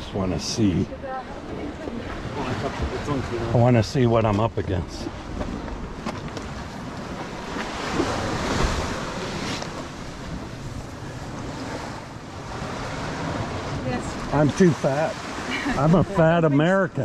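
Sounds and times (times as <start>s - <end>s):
small waves washing on sand: 0.3s - 17.0s.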